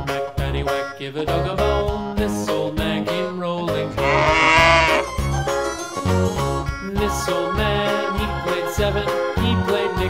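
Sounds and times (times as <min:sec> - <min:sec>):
instrumental children's song: 0:00.0 - 0:10.0
cow mooing: 0:04.0 - 0:05.1.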